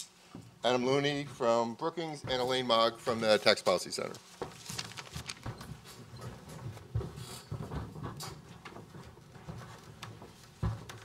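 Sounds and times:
papers and microphones handled: 2.1s - 11.0s
rustling and bumps: 4.3s - 11.0s.

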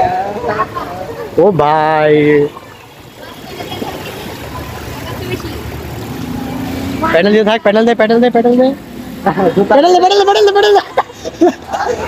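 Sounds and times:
bicycle wheels splashing water: 0.0s - 12.0s.

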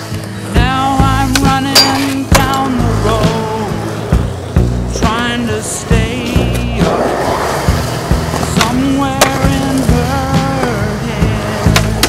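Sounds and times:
skateboard clacks: 0.0s - 3.4s, 4.1s - 12.0s
music with deep bass line: 0.0s - 12.0s
skateboard rolling on concrete: 0.0s - 12.0s.

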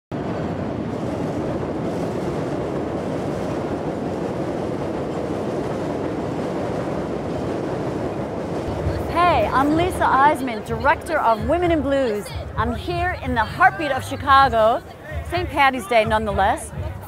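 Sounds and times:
elevated train running on steel track: 0.1s - 17.0s.

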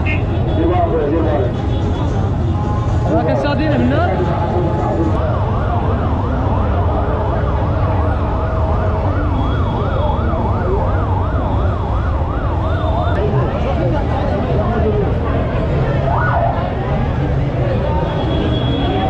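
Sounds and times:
crowd noise: 0.0s - 19.0s
fast yelping siren: 5.2s - 13.2s.

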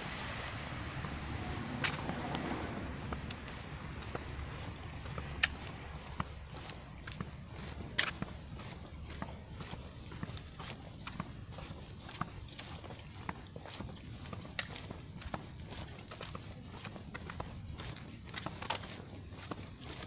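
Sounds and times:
low street rumble: 0.0s - 20.0s
footsteps on concrete: 0.3s - 20.0s.

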